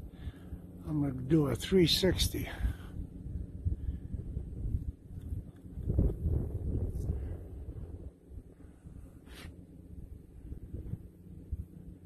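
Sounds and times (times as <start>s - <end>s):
wind buffeting microphone: 0.0s - 9.2s, 10.0s - 12.0s.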